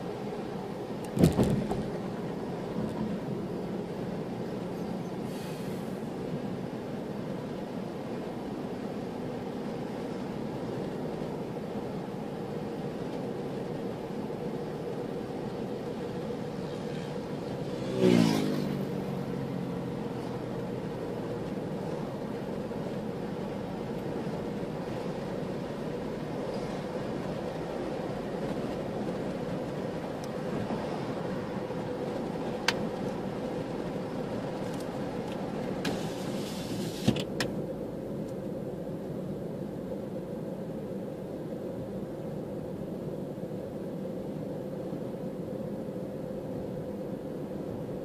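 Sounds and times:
car driving road and engine noise: 0:00.0 - 0:48.0
loud bump and rattle: 0:01.2 - 0:02.0
vehicle passing by: 0:16.5 - 0:21.0.

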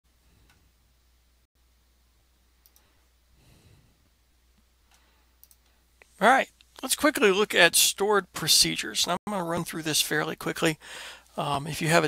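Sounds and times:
computer mouse clicks: 0:02.6 - 0:02.9, 0:04.9 - 0:05.7
soft breath: 0:02.7 - 0:04.2, 0:04.9 - 0:05.9, 0:10.8 - 0:11.4.

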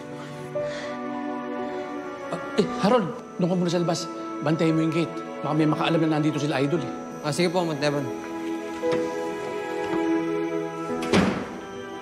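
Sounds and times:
background music sustained notes: 0:00.0 - 0:12.0
wooden door shutting: 0:08.3 - 0:10.2, 0:10.8 - 0:11.8.

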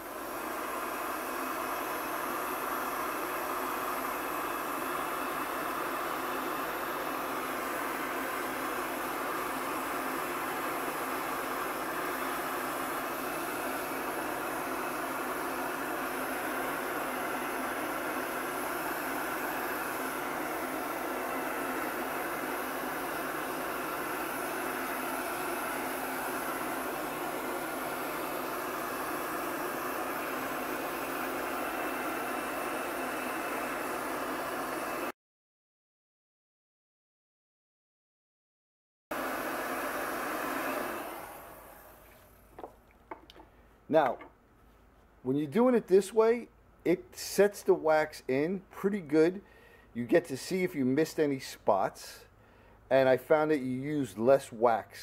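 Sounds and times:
heat gun blowing air: 0:00.0 - 0:35.1, 0:39.1 - 0:44.2.

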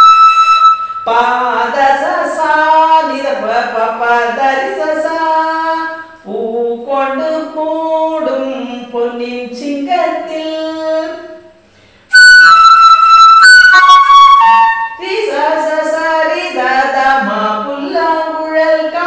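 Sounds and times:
bamboo flute playing: 0:00.0 - 0:01.3, 0:12.1 - 0:15.3
woman singing unaccompanied: 0:01.1 - 0:11.5, 0:14.9 - 0:19.0.

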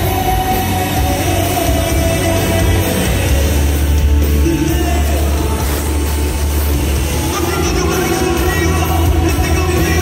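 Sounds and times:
live band through pa: 0:00.0 - 0:10.0.

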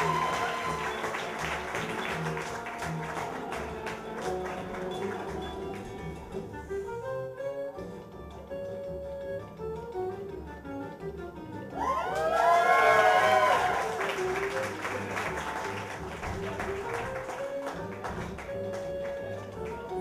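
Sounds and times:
audience cheering and whooping: 0:00.0 - 0:04.9, 0:11.7 - 0:15.1
audience clapping: 0:00.0 - 0:06.4, 0:11.8 - 0:20.0
guitar-led music: 0:00.0 - 0:11.7.

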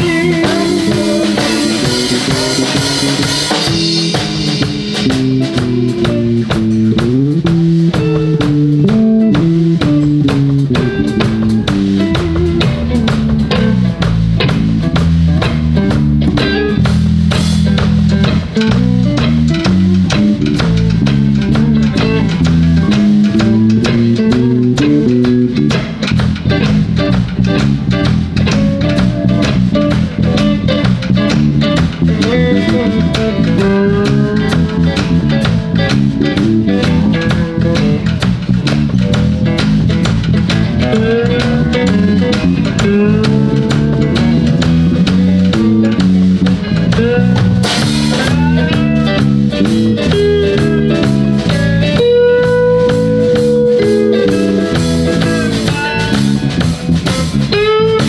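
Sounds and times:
drum kit beat: 0:00.0 - 0:58.0
electric bass: 0:00.0 - 0:58.0
electric guitars: 0:00.0 - 0:58.0.

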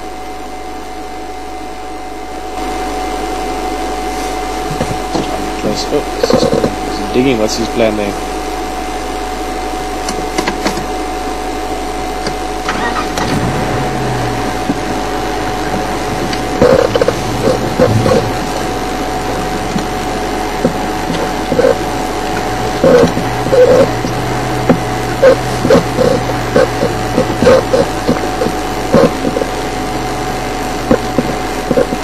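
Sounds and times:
vehicle engine humming: 0:02.4 - 0:32.0.

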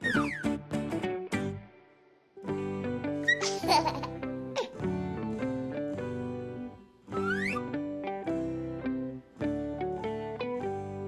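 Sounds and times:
plucked guitar-like music: 0:00.0 - 0:11.0
baby giggling: 0:03.3 - 0:04.8.

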